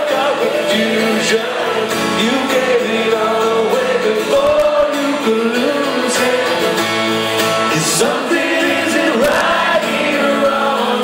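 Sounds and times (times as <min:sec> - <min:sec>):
acoustic guitar: 0:00.0 - 0:11.0
live band playing: 0:00.0 - 0:11.0
voices singing: 0:00.0 - 0:11.0.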